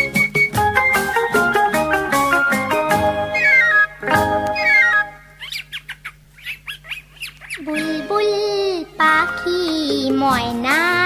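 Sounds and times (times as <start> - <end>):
music: 0.0 - 5.2, 7.8 - 11.0
quick downward-sliding bird chirps: 3.3 - 4.0, 4.6 - 7.6.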